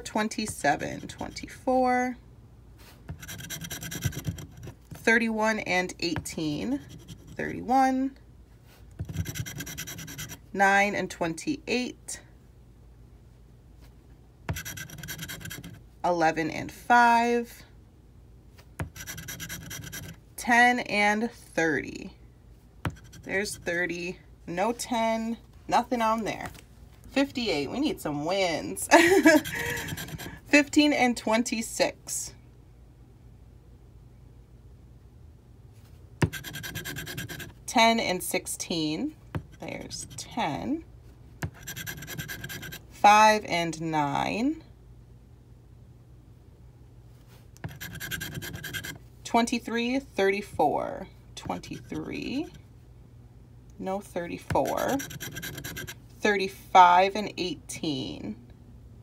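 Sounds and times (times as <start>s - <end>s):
coin scratching lottery ticket: 3.1s - 4.8s, 6.6s - 7.4s, 9.0s - 10.4s, 14.5s - 15.8s, 18.8s - 20.2s, 22.9s - 23.8s, 29.3s - 30.4s, 36.2s - 37.6s, 39.5s - 40.4s, 41.4s - 42.8s, 47.6s - 49.0s, 51.5s - 52.6s, 54.5s - 56.0s.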